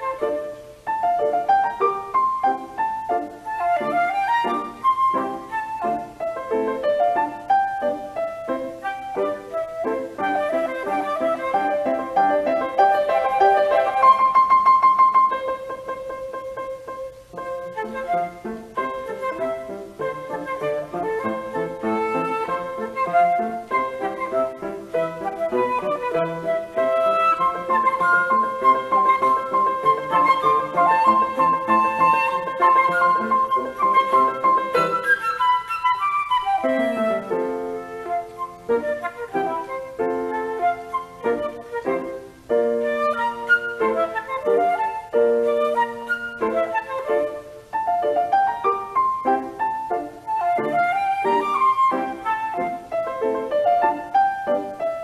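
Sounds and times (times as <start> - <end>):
flute playing long notes: 0.0 - 55.0
grand piano accompaniment: 0.0 - 55.0.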